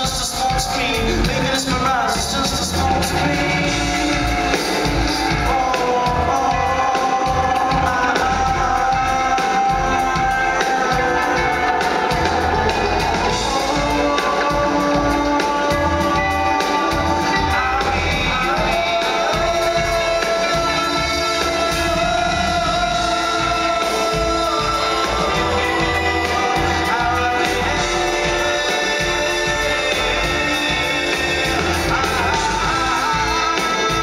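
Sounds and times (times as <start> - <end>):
bass and drums: 0.0 - 34.0
person singing into microphone: 0.0 - 34.0.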